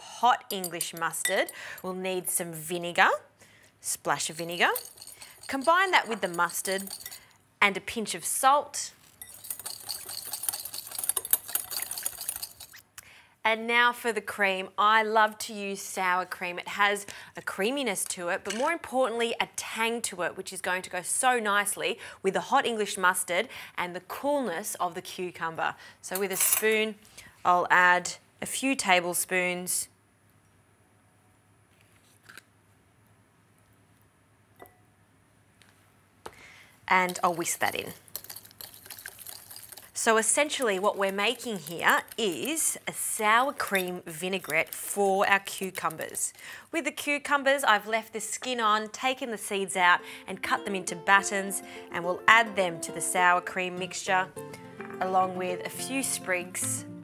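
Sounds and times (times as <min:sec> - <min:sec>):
salt flakes falling into glass bowl: 0:04.2 - 0:07.2, 0:09.1 - 0:12.8, 0:36.9 - 0:46.4.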